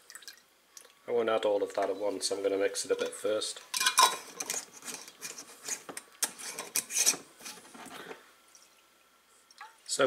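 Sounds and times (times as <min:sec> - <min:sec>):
metal lid twisted onto glass jar: 0:03.0 - 0:05.4.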